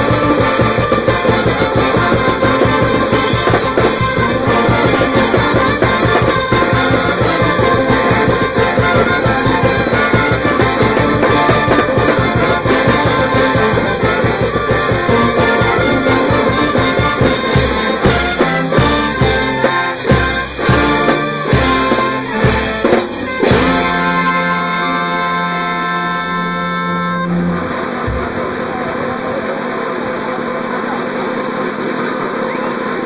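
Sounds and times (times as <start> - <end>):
brass band playing: 0.0 - 33.0
steady background noise: 27.2 - 33.0.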